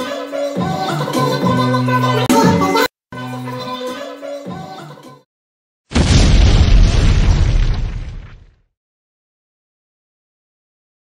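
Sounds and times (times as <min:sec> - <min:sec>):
explosion with low boom: 0:05.9 - 0:08.6.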